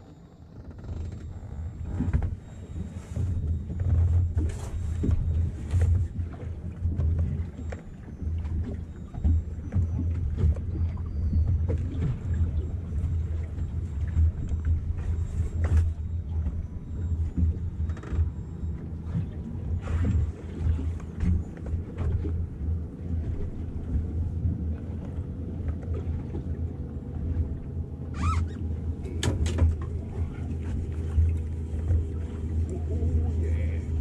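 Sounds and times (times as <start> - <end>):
small knocks from boat: 0.0 - 32.9.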